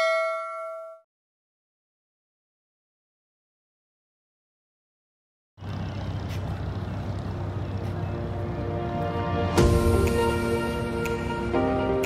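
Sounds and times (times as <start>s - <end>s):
low engine-like rumble: 5.6s - 10.8s.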